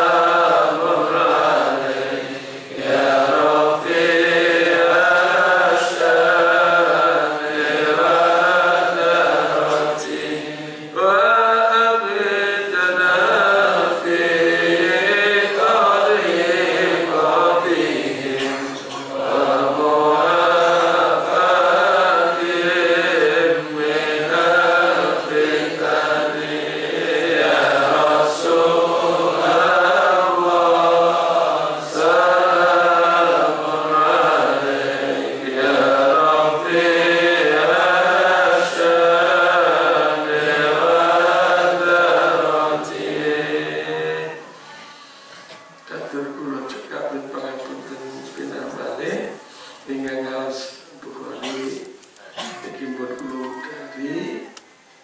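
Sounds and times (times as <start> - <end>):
devotional chanting: 0.0 - 54.7.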